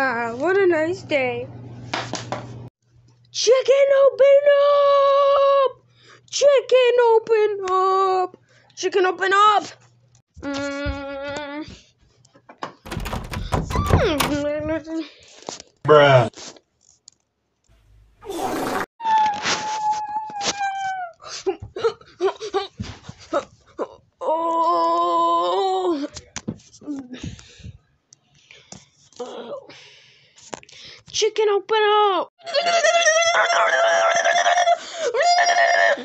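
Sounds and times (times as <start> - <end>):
high-pitched voice screaming: 32.4 - 36.0.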